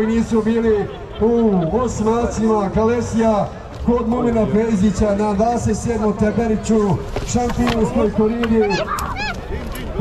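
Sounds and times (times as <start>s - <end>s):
man talking over loudspeaker: 0.0s - 8.9s
high-pitched shout: 8.6s - 9.4s.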